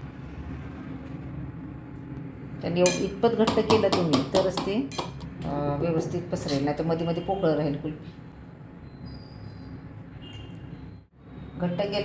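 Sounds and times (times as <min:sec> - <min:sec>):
spoon clinking against metal bowl: 0:02.8 - 0:05.2.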